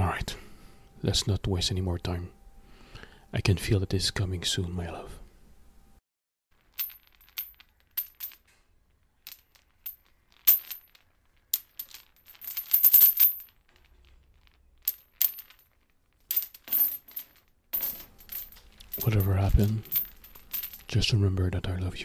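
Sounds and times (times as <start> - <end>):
metal chains clinking and rattling: 6.6 - 21.2.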